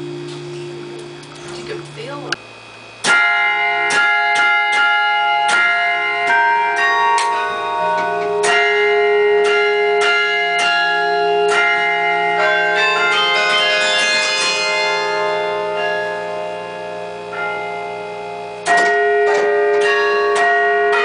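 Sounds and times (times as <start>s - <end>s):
carillon bells playing slow melody: 0.0s - 1.7s, 3.1s - 21.0s.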